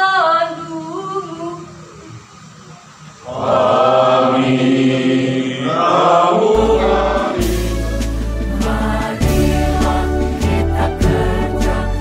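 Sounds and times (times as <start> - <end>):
group singing long held notes: 3.2 - 12.0
music track with deep bass: 6.6 - 12.0.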